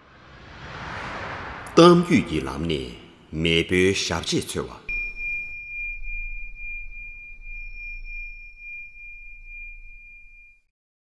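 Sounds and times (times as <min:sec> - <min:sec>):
low hum: 0:00.0 - 0:03.4, 0:04.9 - 0:10.7
struck metal chime ringing: 0:04.9 - 0:10.7.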